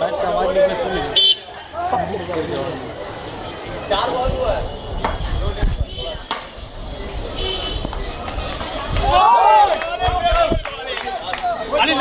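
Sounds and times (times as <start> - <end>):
crowd talking and calling: 0.0 - 12.0.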